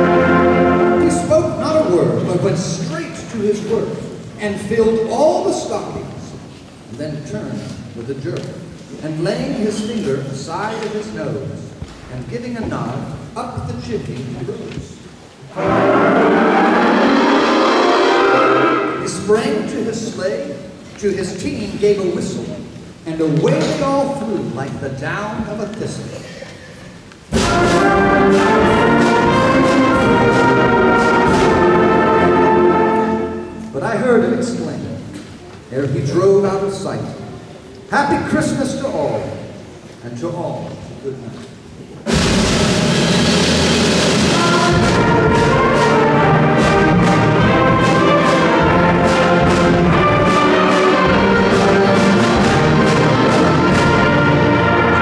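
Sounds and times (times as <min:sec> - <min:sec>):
man narrating: 0:00.9 - 0:15.0, 0:19.0 - 0:26.4, 0:33.6 - 0:35.1, 0:35.7 - 0:37.3, 0:37.9 - 0:41.5
concert band sustained chord: 0:15.5 - 0:19.2.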